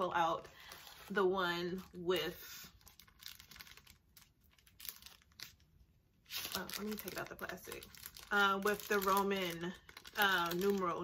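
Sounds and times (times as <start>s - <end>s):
plastic bag crinkling: 0.4s - 11.0s.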